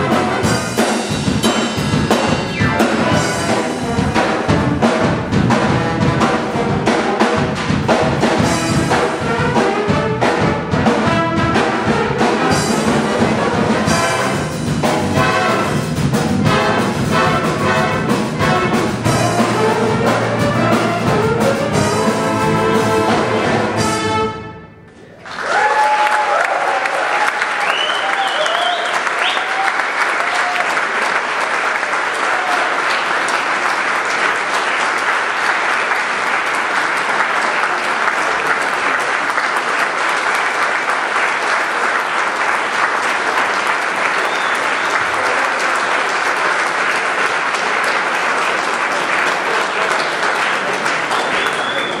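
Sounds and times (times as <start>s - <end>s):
big band chord: 0.0s - 25.0s
audience applauding: 24.9s - 52.0s
cheers and whistles: 25.2s - 30.8s, 44.1s - 45.3s, 51.0s - 52.0s.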